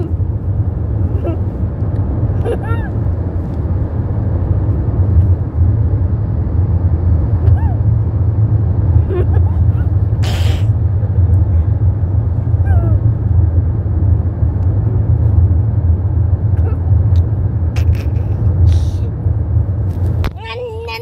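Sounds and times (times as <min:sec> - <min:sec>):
car cabin road rumble: 0:00.0 - 0:21.0.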